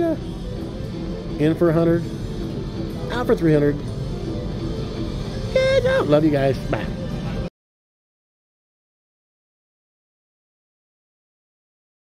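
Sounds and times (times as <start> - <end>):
crowd and machine hum: 0.0 - 7.5.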